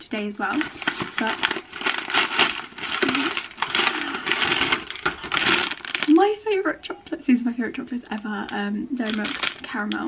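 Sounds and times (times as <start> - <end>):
wrapping paper crinkling: 0.4 - 6.4, 8.2 - 10.0.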